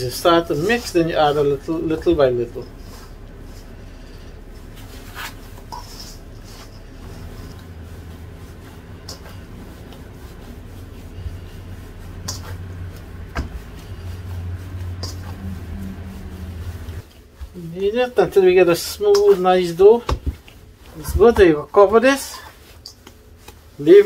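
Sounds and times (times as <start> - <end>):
hands kneading dough: 0.0 - 24.0
low steady hum: 0.0 - 24.0.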